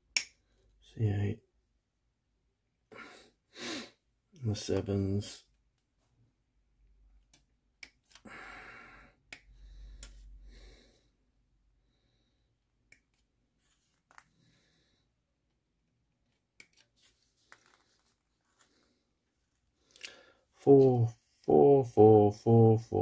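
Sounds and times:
soft plastic rustles: 0:16.7 - 0:20.1.

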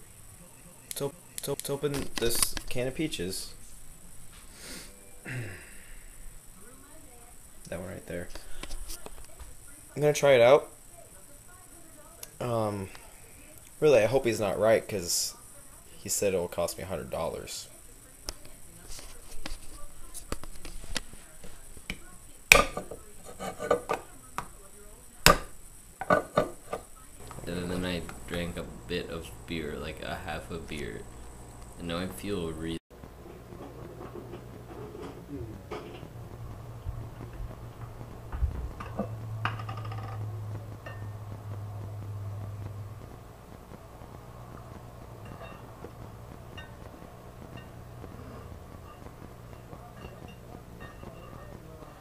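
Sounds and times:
low hum: 0:27.1 - 0:52.0.

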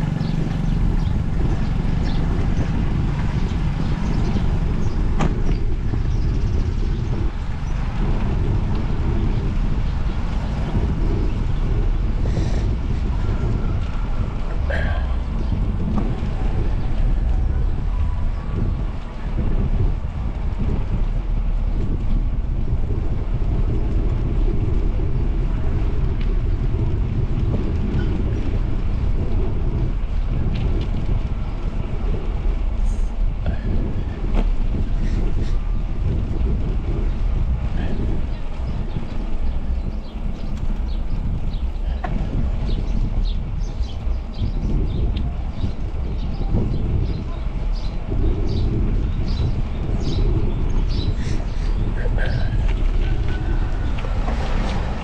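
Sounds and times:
low wind rumble on microphone: 0:00.0 - 0:55.0.

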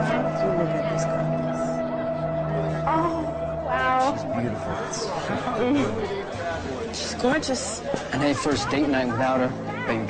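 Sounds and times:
chatter of people talking: 0:00.0 - 0:10.0
music: 0:00.0 - 0:10.0.

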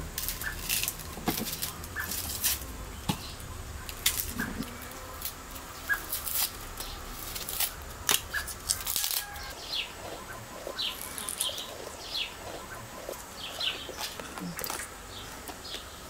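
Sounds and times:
knife paring potato skin: 0:03.9 - 0:09.5.

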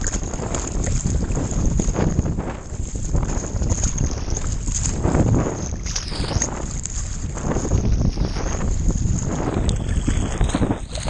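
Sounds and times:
sea water splashing: 0:00.0 - 0:11.0
steady low rumble: 0:00.0 - 0:11.0.

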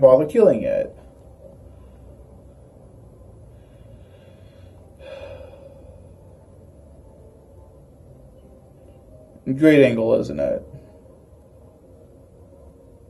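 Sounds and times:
low room rumble: 0:00.0 - 0:13.0
soft breath: 0:01.0 - 0:06.6.

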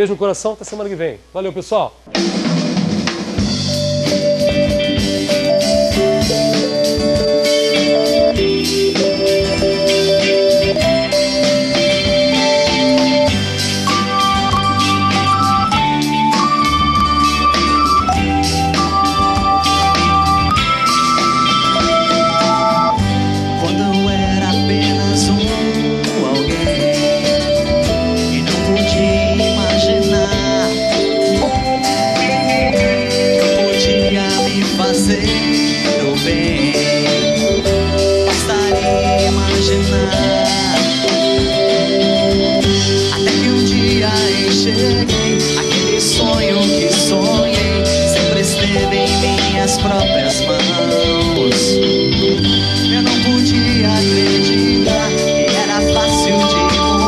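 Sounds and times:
drums: 0:00.0 - 0:57.0
electric guitar: 0:02.1 - 0:57.0
live pop-rock band playing: 0:02.1 - 0:57.0
strummed acoustic guitar: 0:03.4 - 0:57.0
male lead vocal: 0:23.0 - 0:27.3, 0:28.2 - 0:31.9, 0:33.4 - 0:41.7, 0:43.0 - 0:57.0.

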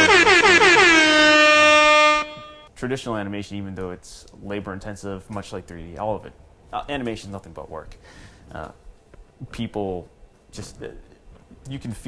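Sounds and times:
buzzy electronic horn note: 0:00.0 - 0:02.7
man speaking: 0:11.7 - 0:12.0.

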